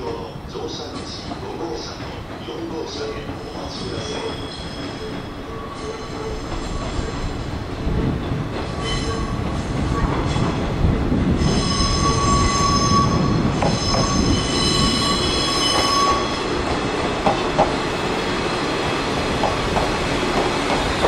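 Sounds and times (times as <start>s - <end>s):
train wheels rumbling: 0.0s - 21.0s
train wheel squeal: 0.1s - 7.4s, 8.7s - 10.6s, 11.4s - 17.4s
wheels clacking over rail joints: 13.4s - 21.0s.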